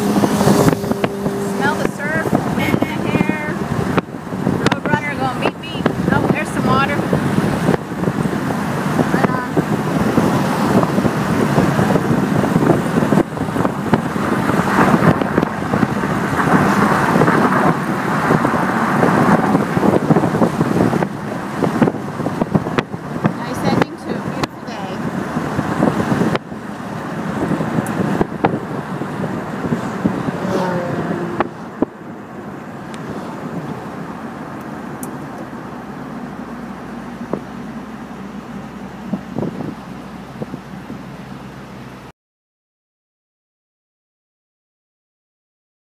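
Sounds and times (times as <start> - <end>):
car road and wind noise: 0.0 - 42.1.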